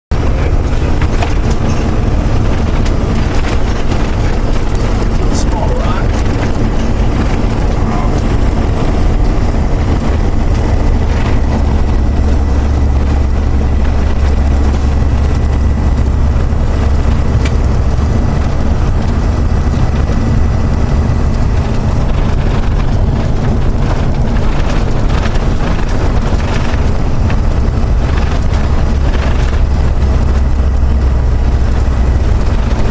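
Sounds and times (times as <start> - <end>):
vehicle engine and tyres rumbling: 0.0 - 32.9.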